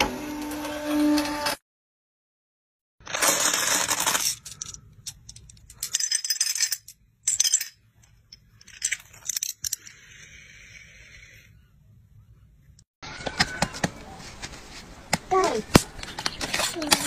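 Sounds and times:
steel balls clinking and rattling: 3.0s - 11.4s.

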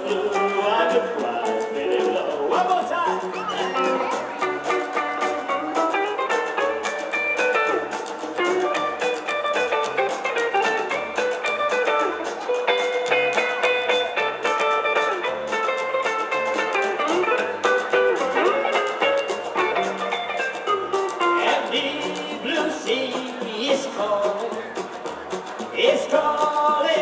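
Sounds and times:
lead guitar quick notes: 0.0s - 25.8s
drums: 0.0s - 27.0s
strummed acoustic guitar: 0.0s - 27.0s
walking upright bass: 0.0s - 27.0s.

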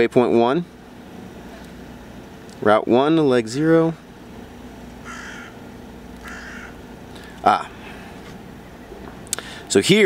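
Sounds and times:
faint steady hum: 0.0s - 10.0s
harsh bird call: 5.0s - 5.6s, 6.2s - 6.8s.

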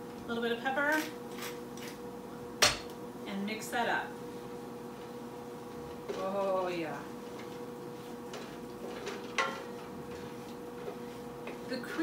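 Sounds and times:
kitchen hum: 0.0s - 12.0s.

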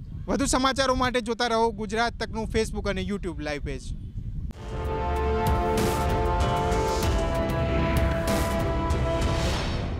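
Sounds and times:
theme music with heavy bass: 4.6s - 9.9s.

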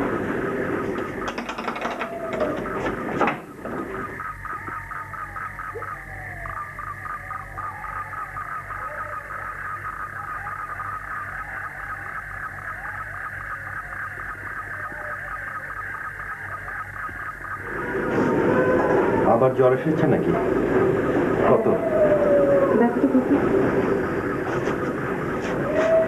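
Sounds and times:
faint low hum: 0.0s - 26.0s
frogs and insects chirring: 0.0s - 26.0s.

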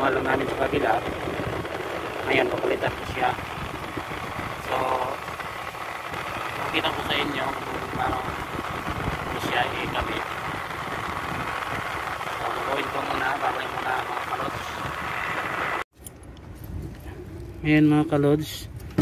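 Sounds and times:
air conditioner running: 0.0s - 13.7s.

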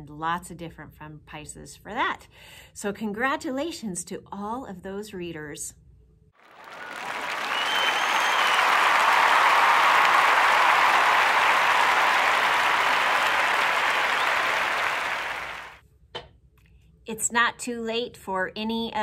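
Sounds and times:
crowd applause: 6.4s - 15.8s
short high whistle: 6.7s - 9.1s.

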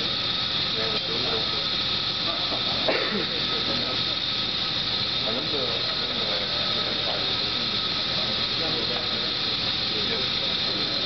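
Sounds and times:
faint voices: 0.0s - 11.0s
laboratory machinery hiss: 0.0s - 11.0s.

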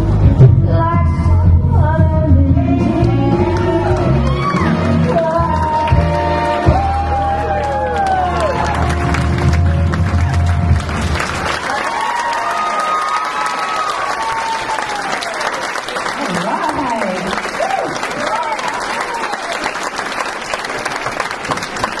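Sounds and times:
audience applauding: 3.0s - 22.0s.

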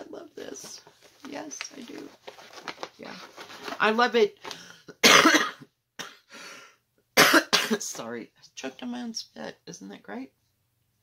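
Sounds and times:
woman coughing: 4.9s - 6.3s, 7.2s - 8.0s.

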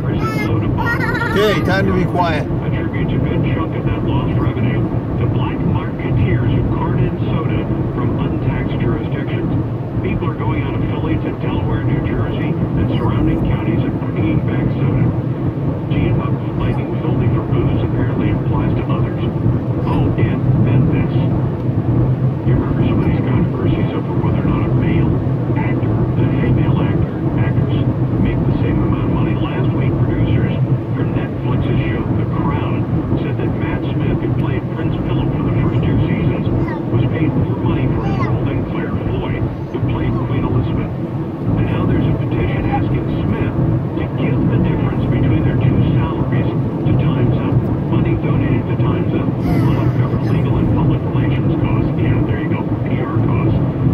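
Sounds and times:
indistinct speech: 0.0s - 2.5s, 34.4s - 40.8s, 49.4s - 51.3s
car cabin drone: 0.0s - 53.9s.

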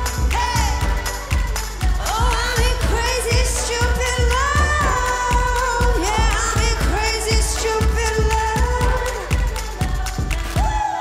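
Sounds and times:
person singing: 0.0s - 11.0s
pounding dance beat: 0.0s - 11.0s.

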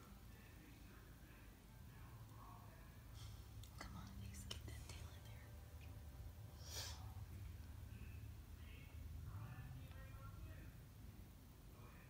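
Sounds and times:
steady low hum: 0.0s - 12.0s
faint whispering: 0.1s - 5.9s
breathy hiss: 6.5s - 7.2s.

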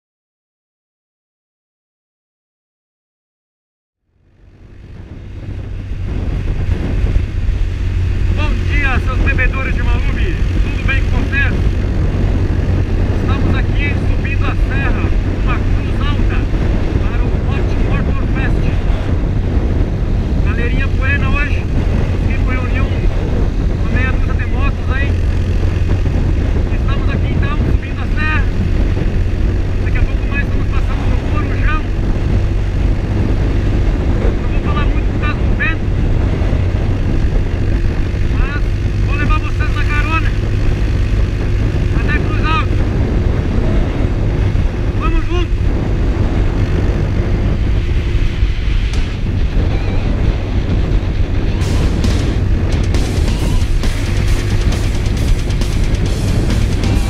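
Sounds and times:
motorcycle engine cruising: 4.0s - 57.0s
wind rushing: 4.2s - 57.0s.

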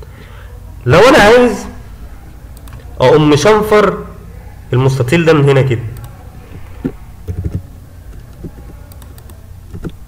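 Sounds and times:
low steady hum: 0.0s - 10.0s
computer keyboard keystrokes: 7.2s - 10.0s.

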